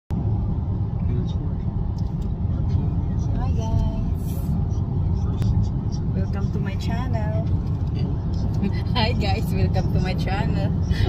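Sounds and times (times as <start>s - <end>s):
car interior road noise: 0.1s - 11.0s.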